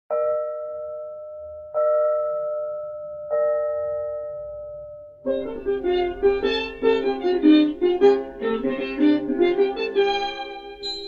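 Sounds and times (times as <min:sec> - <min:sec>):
bell ringing: 0:10.8 - 0:11.0.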